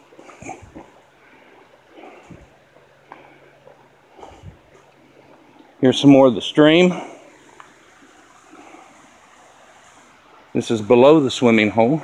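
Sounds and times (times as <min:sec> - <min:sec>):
flowing stream water: 0:00.0 - 0:12.0.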